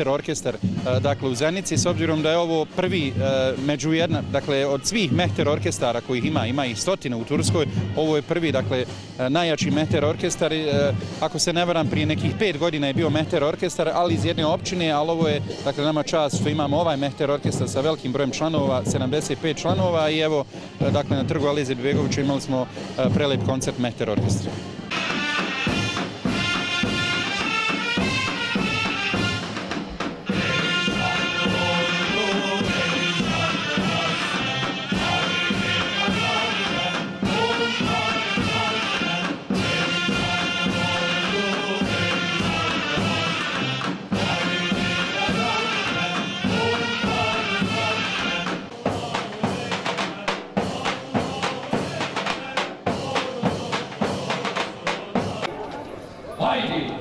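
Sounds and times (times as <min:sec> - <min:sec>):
drum beats: 0:00.0 - 0:55.6.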